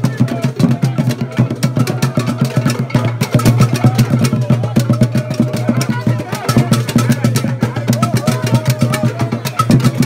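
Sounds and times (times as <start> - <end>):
hand drums fast beat: 0.0 - 10.0.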